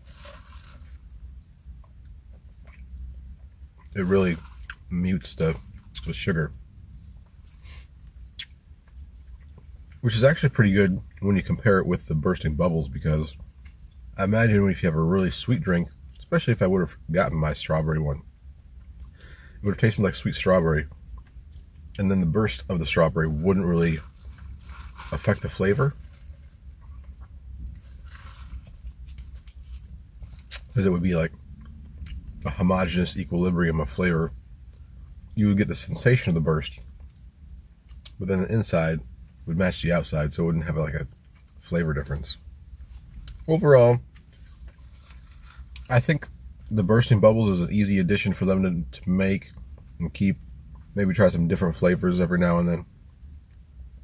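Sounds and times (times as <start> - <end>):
steady low rumble: 0.0 - 54.0.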